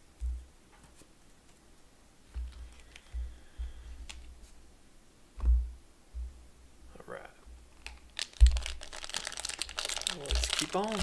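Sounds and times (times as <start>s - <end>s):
dull thump: 5.4s - 6.4s
foil wrapper crinkling: 7.8s - 11.0s.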